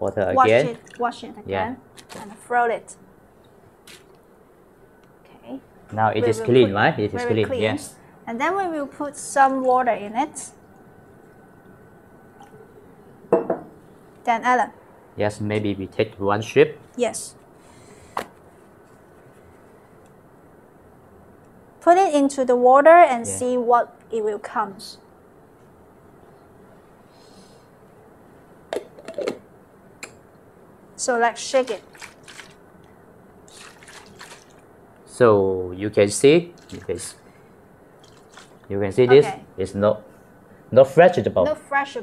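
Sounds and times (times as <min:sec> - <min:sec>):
water pouring into plastic bottle: 0:31.8 - 0:32.6, 0:33.5 - 0:34.6, 0:36.6 - 0:37.1, 0:38.0 - 0:38.7.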